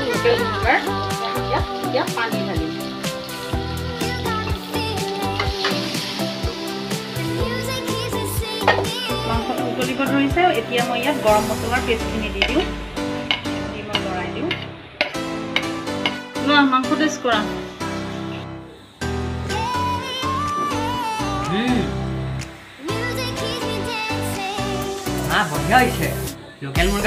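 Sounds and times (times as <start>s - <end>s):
background music: 0.0s - 27.0s
food sizzling: 0.0s - 27.0s.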